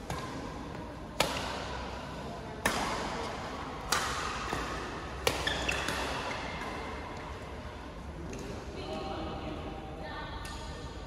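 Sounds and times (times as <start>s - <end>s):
racket hitting shuttlecock: 0.0s - 1.9s, 2.5s - 6.8s.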